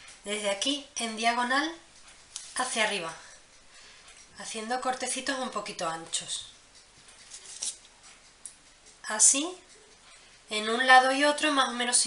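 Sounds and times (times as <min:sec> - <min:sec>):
knife scraping pastry: 0:07.2 - 0:08.0.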